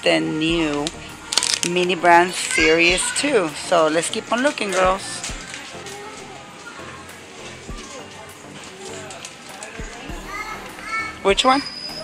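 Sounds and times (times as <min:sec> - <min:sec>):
faint music: 0:00.0 - 0:12.0
soft low thumps: 0:00.5 - 0:01.3
distant children's voices: 0:01.1 - 0:12.0.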